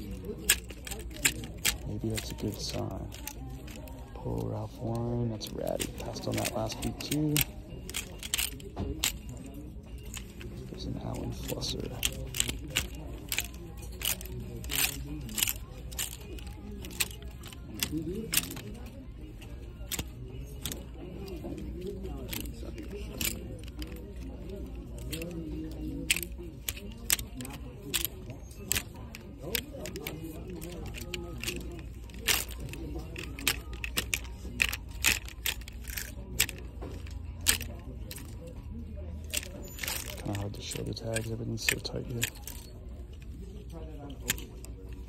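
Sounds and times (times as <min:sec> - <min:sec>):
background music: 0:00.0 - 0:45.0
faint background voices: 0:00.0 - 0:45.0
plastic hangers clicking on rack: 0:00.0 - 0:45.0.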